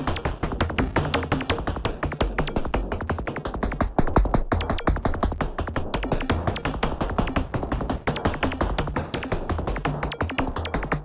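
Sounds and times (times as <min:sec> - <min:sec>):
electronic music with pitched blips: 0:00.0 - 0:11.0.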